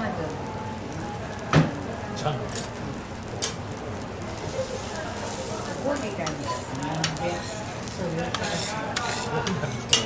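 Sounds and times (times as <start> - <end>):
food sizzling as it fries: 0.0 - 10.0.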